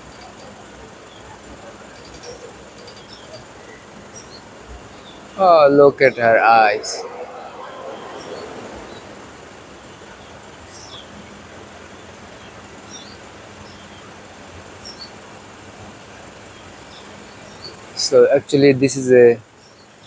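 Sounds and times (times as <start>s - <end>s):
outdoor background hiss: 0.0s - 20.0s.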